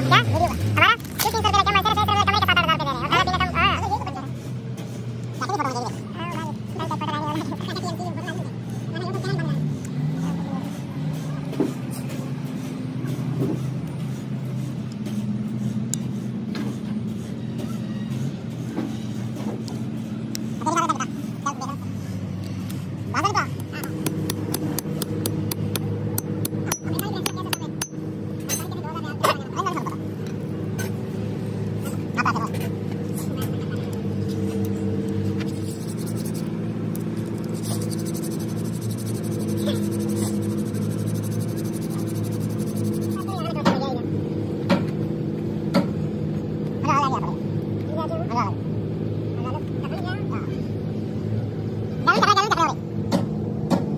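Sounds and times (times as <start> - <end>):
hammer clicking and tapping: 23.5 - 28.0.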